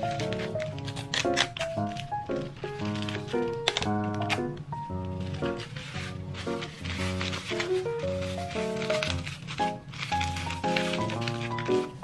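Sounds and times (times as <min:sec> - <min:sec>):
background music melody: 0:00.0 - 0:12.0.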